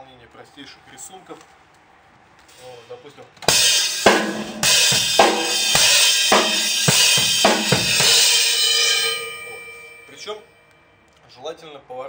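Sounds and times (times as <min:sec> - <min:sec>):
drum kit slow beat: 0:03.5 - 0:10.3
cymbals ringing: 0:03.5 - 0:10.6.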